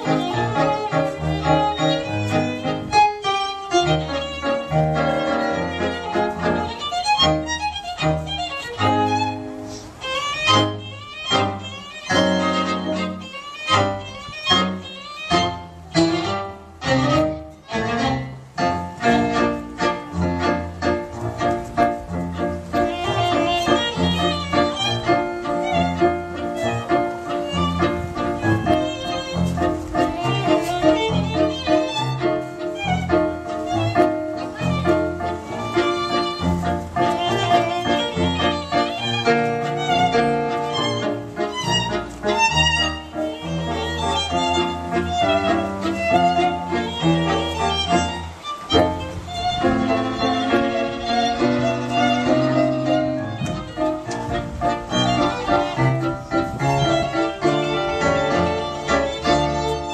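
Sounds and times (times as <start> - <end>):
string quintet playing: 0.0 - 59.9
violin melody: 0.0 - 59.9.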